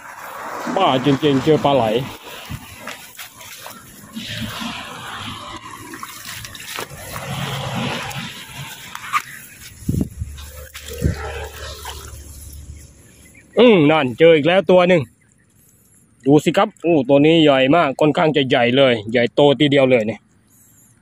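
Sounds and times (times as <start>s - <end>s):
shallow water splashing: 0.0s - 17.0s
wet grass rustling: 0.0s - 19.0s, 20.3s - 21.0s.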